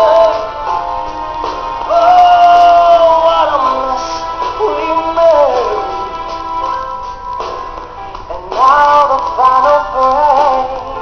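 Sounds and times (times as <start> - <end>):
man singing into a microphone: 0.0 - 0.7, 1.9 - 6.2, 8.3 - 11.0
backing music: 0.0 - 11.0.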